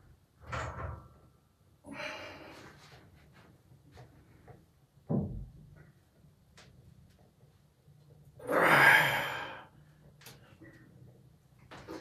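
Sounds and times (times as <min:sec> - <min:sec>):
man exhaling with effort: 0:08.4 - 0:09.7.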